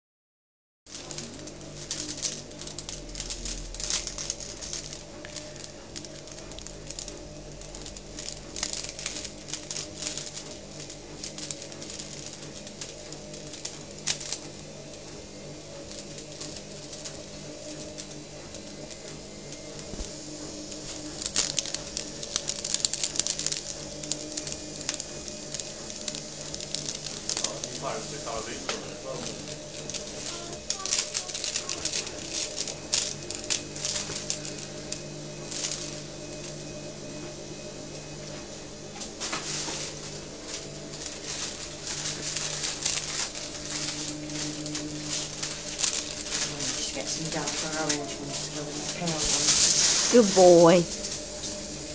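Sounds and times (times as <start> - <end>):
paper envelope crinkling: 0.9 - 51.9
steady background hum: 0.9 - 51.9.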